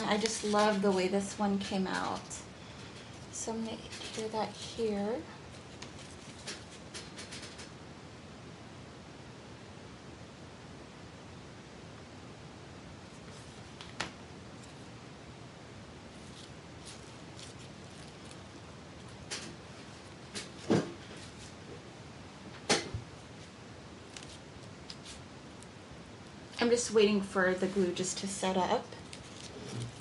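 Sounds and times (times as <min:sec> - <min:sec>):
faint steady hiss: 0:00.0 - 0:30.0.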